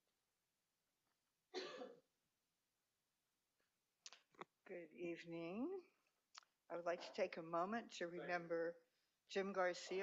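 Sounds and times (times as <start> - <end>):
short cough: 1.6 - 2.1.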